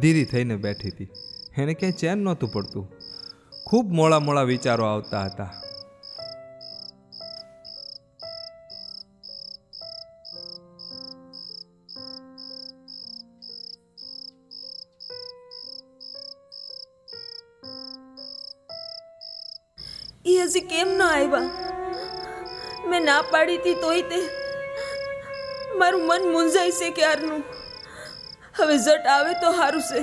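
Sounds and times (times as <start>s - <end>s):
soft slow background music: 0.0s - 30.0s
cricket chirping: 0.2s - 29.3s
woman speaking: 20.3s - 22.0s, 22.6s - 24.4s, 25.7s - 27.6s, 28.6s - 30.0s.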